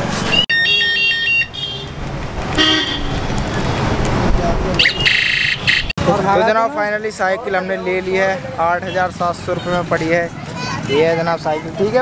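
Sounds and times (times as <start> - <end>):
street traffic rumble: 0.0 - 12.0
vehicle horns: 0.3 - 3.4, 4.8 - 5.9.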